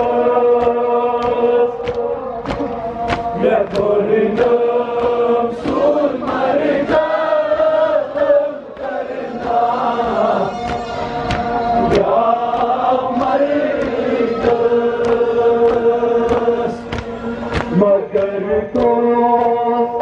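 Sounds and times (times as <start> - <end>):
men chanting a lament: 0.0 - 20.0.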